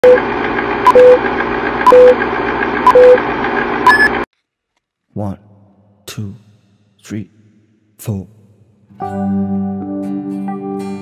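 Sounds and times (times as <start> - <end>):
short beep: 0.9 - 1.2, 1.9 - 2.2, 2.9 - 3.2, 3.9 - 4.2.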